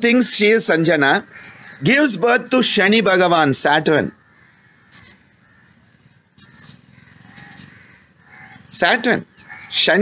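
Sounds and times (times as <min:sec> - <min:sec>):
short bird calls: 0:01.2 - 0:03.0, 0:04.0 - 0:10.0.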